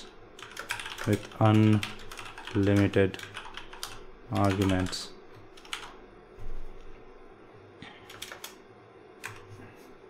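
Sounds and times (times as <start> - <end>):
faint steady hum: 0.0 - 10.0
computer keyboard keystrokes: 0.4 - 6.0, 8.0 - 8.6, 9.2 - 9.5.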